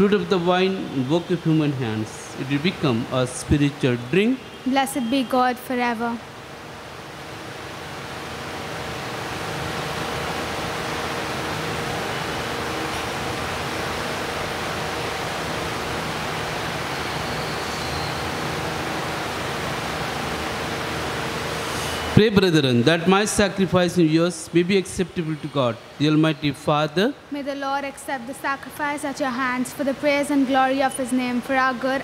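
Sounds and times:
faint hum: 0.0s - 32.0s
rushing room noise: 0.0s - 32.0s.

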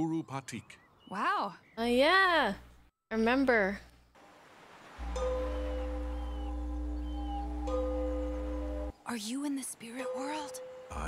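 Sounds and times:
meditation bell ringing: 5.0s - 8.9s, 10.0s - 11.0s
low steady hum: 5.0s - 9.0s.

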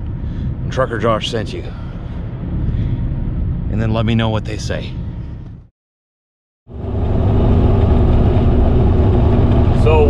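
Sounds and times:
diesel truck engine droning: 6.7s - 10.0s
tyre and road noise: 6.7s - 10.0s.

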